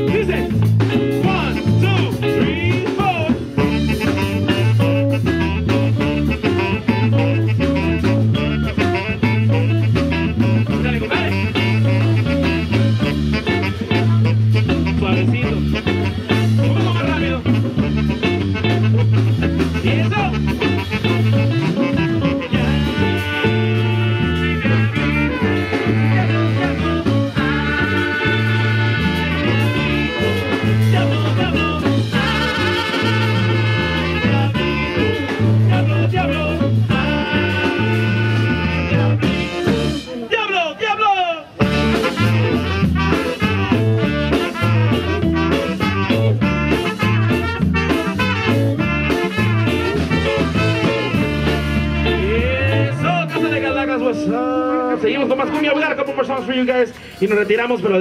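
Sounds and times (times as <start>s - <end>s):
lead singer: 0.0s - 3.8s, 22.2s - 40.3s, 51.9s - 55.4s
electric bass line: 0.0s - 40.3s, 41.5s - 56.7s
guitar: 0.0s - 58.0s
trumpet and saxophone lines: 0.0s - 58.0s.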